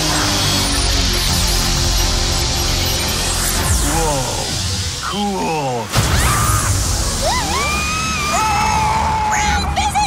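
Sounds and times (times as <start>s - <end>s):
trailer music: 0.0s - 10.0s
cartoon characters screaming: 5.9s - 10.0s.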